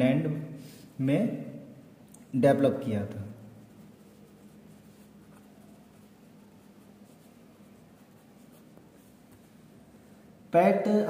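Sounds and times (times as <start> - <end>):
pen scratching on paper: 3.6 - 9.2.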